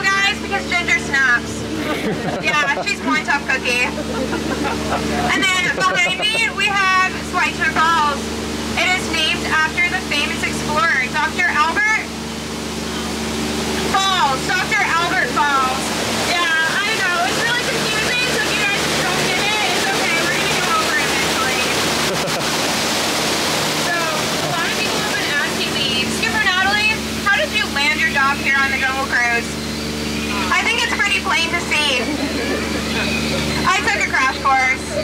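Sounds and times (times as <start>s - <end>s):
people talking: 0.0s - 12.2s, 13.8s - 22.5s, 23.8s - 29.6s, 30.2s - 35.0s
boat motor humming: 0.0s - 35.0s
waterfall rushing: 0.0s - 35.0s.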